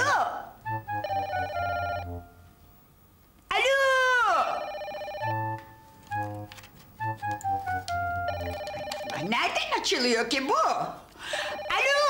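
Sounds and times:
woman speaking: 0:00.0 - 0:00.6, 0:03.5 - 0:04.8, 0:09.0 - 0:12.0
light comedic background music: 0:00.0 - 0:02.4, 0:05.2 - 0:09.5
telephone ringing: 0:00.8 - 0:02.3, 0:04.4 - 0:05.9, 0:08.0 - 0:09.4, 0:11.3 - 0:12.0.

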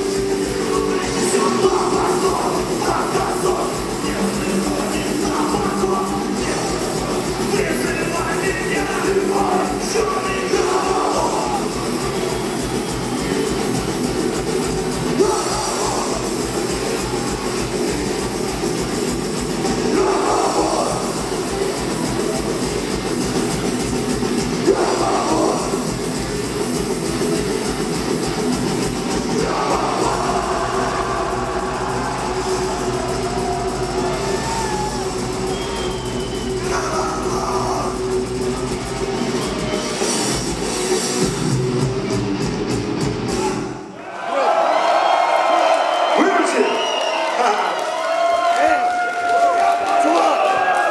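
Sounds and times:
distorted electric guitars: 0:00.0 - 0:43.8
rapid drumming: 0:00.0 - 0:43.8
metal vocals: 0:00.5 - 0:12.1, 0:15.1 - 0:17.1, 0:19.6 - 0:21.9, 0:24.4 - 0:26.7, 0:29.0 - 0:32.9, 0:36.5 - 0:38.7.

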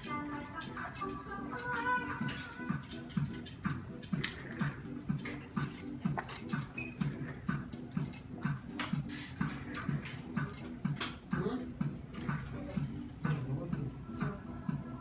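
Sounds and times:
background music with low beat: 0:00.0 - 0:15.0.

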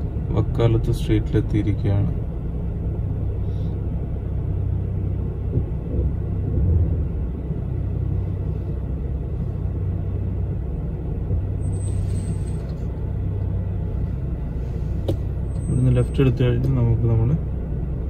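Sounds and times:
car engine idling: 0:00.0 - 0:18.0
traffic noise: 0:00.0 - 0:18.0.

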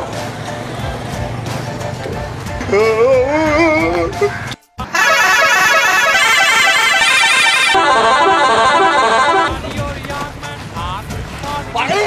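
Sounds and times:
musical truck horn playing melody: 0:02.6 - 0:09.8.

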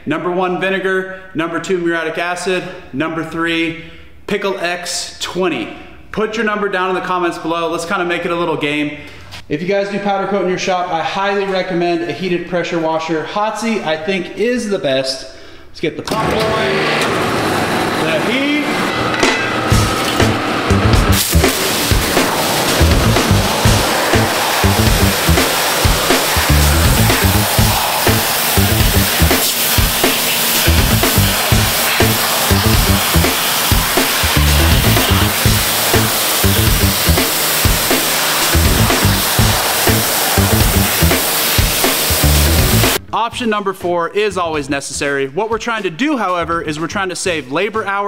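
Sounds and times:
music with steady beat: 0:19.2 - 0:43.0
pressure washer spray hissing: 0:19.7 - 0:43.0.

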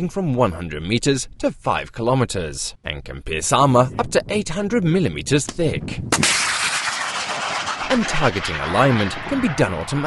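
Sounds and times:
missile flight hiss: 0:06.1 - 0:10.0
missile launch bang: 0:06.1 - 0:10.0.

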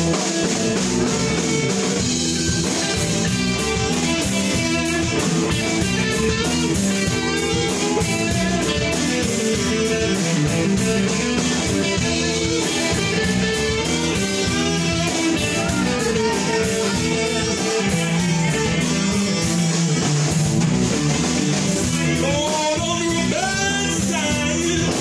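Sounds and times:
drum kit beat: 0:00.0 - 0:25.0
electric guitar: 0:00.0 - 0:25.0.

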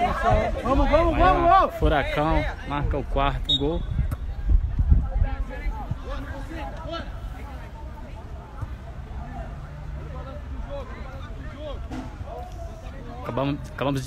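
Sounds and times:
low rumbling on microphone: 0:03.8 - 0:06.4.

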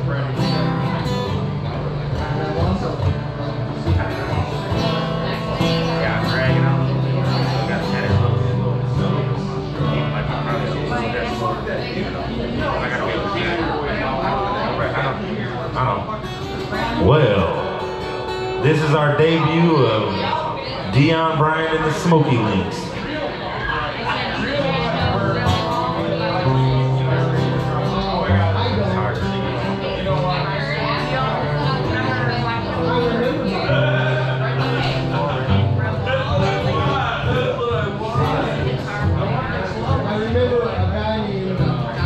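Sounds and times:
acoustic guitar picking: 0:00.0 - 0:12.7, 0:16.0 - 0:42.0
bar-room voices: 0:00.0 - 0:42.0
man talking: 0:17.0 - 0:18.0, 0:18.6 - 0:23.0.

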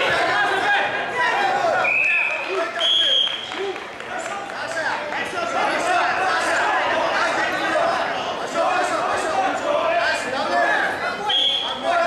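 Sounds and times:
referee's whistle blasts: 0:01.8 - 0:03.5, 0:11.3 - 0:11.8
scattered shouts: 0:04.1 - 0:12.0.

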